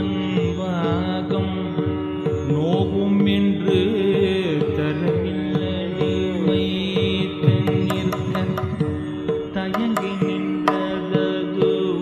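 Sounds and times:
hand drum strokes: 6.8 - 12.0.

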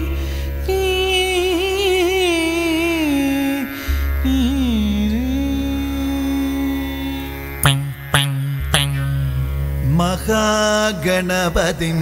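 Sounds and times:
man singing: 9.8 - 12.0.

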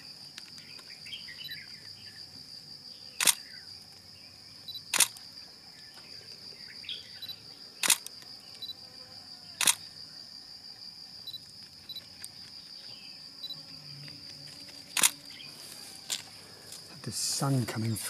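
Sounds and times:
high-pitched insect drone: 0.0 - 17.6
camera shutter clicks: 3.2 - 3.4, 4.9 - 5.2, 7.8 - 8.1, 9.6 - 9.9, 15.0 - 15.2.

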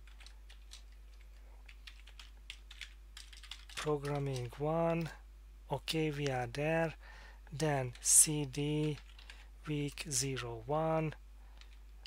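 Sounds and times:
computer keyboard typing: 0.0 - 5.1, 7.8 - 9.5, 11.6 - 11.8.

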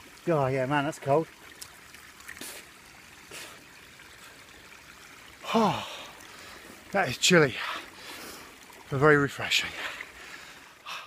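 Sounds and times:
waterfall trickling: 0.0 - 11.0.

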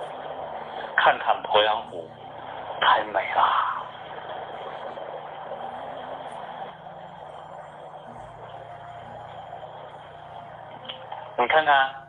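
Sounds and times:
background hiss: 0.0 - 12.0
faint low hum: 0.0 - 12.0.

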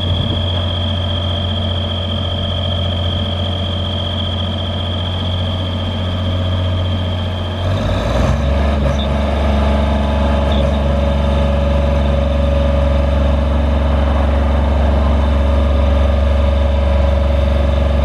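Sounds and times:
diesel engine running: 0.0 - 18.0.

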